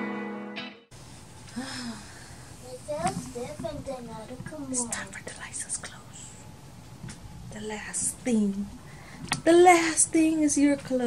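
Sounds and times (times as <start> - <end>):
woman whispering: 4.8 - 6.4.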